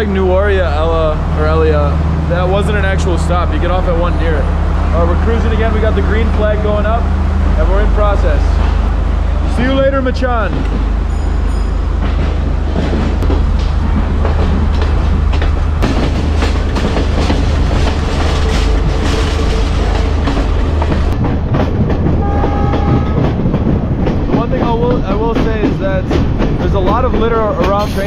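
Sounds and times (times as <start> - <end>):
train rumble: 0.0 - 28.0
wheels clattering over rails: 0.0 - 28.0.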